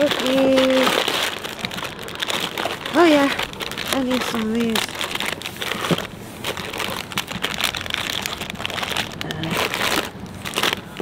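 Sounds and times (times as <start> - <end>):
plastic snack packets crinkling: 0.0 - 11.0.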